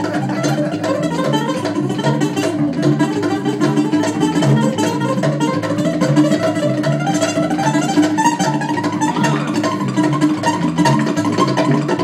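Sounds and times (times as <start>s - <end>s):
acoustic guitar: 0.0s - 12.0s
bass line: 0.0s - 12.0s
electric guitar: 0.0s - 12.0s
hand drum strikes: 0.0s - 12.0s.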